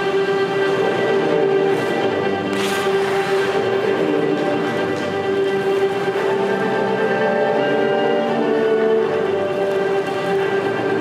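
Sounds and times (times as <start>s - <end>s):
slow orchestral music: 0.0s - 11.0s.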